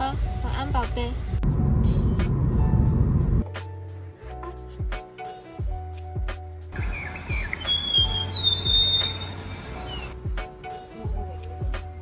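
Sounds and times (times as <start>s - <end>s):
background music: 0.0s - 12.0s
car road and engine rumble: 1.2s - 3.4s.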